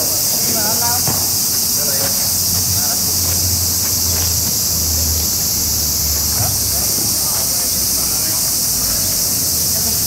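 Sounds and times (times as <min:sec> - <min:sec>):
insects singing: 0:00.0 - 0:10.0.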